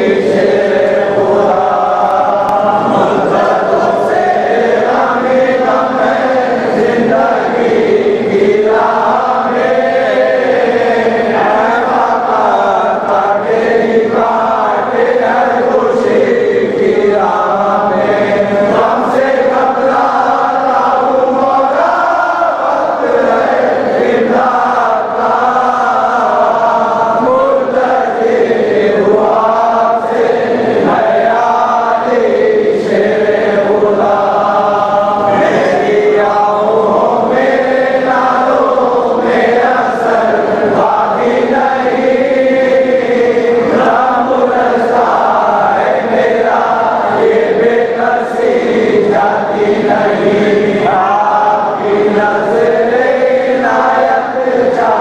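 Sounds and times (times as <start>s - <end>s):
voices chanting devotional melody: 0.0s - 55.0s.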